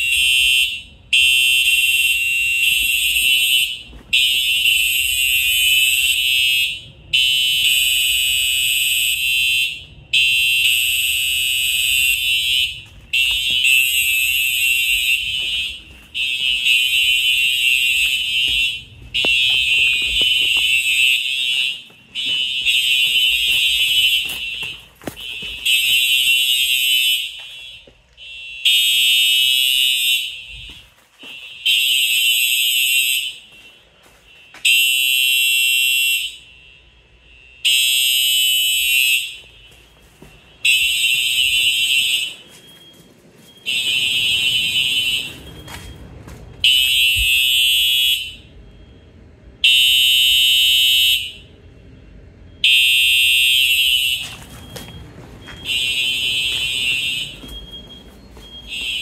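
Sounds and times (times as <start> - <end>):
fire alarm horns blasting: 0.0 - 59.0.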